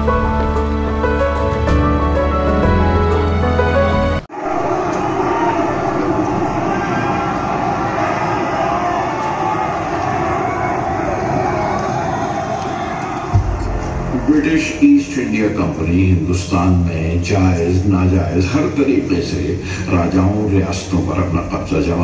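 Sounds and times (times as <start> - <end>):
music: 0.0 - 4.3, 13.3 - 15.6
low boom: 13.3 - 15.8.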